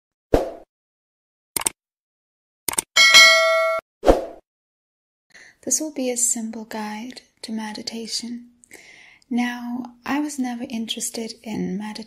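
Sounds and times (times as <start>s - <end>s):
quick clicks: 1.6s - 1.8s, 2.7s - 2.9s
notification bell ding: 3.0s - 3.8s.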